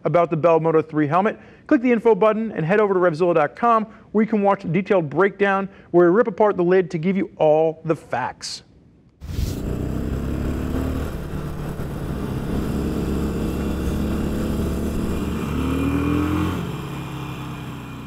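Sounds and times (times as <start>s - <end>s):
motorcycle engine accelerating: 9.2s - 18.0s.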